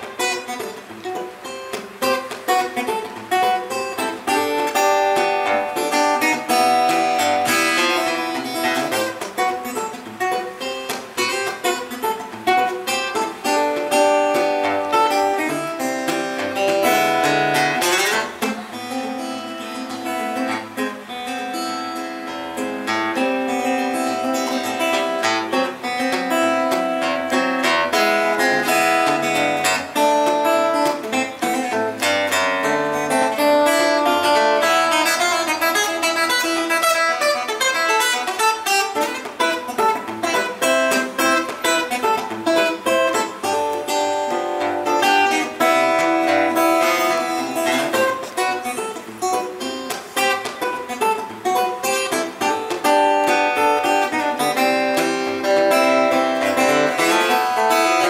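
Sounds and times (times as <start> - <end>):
fingerstyle acoustic guitar: 0.0 - 58.0.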